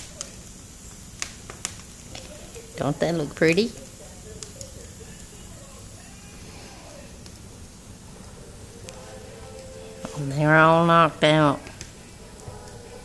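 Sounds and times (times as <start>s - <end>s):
fire low hiss: 0.0s - 13.0s
wood fire crackling and popping: 0.0s - 13.0s.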